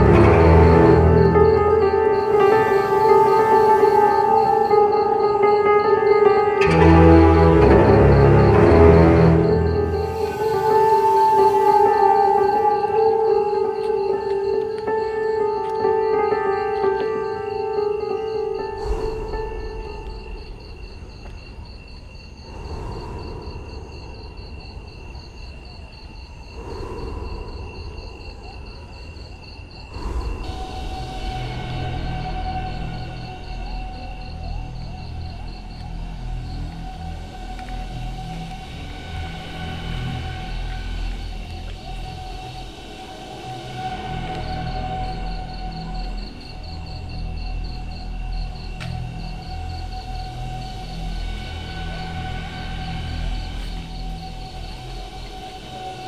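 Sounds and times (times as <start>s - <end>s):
crickets trilling: 0.0s - 56.0s
eerie drone tones: 0.0s - 56.0s.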